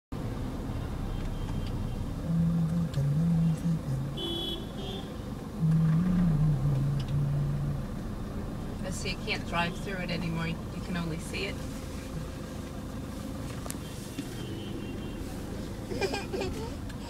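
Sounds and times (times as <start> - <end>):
car engine and road rumble: 0.1 - 17.0
low melody of held notes: 5.6 - 8.4.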